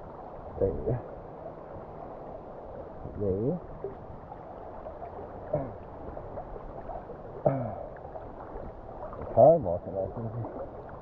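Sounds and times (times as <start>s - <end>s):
river water sloshing and gurgling: 0.0s - 11.0s.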